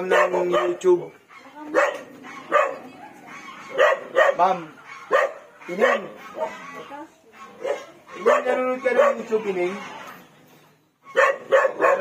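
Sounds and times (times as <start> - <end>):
dog barking: 0.0 - 9.9, 11.1 - 12.0.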